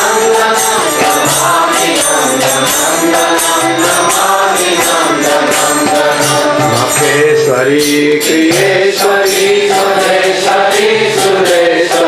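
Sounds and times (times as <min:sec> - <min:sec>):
devotional chanting: 0:00.0 - 0:12.0
hand cymbals keeping a beat: 0:00.0 - 0:12.0.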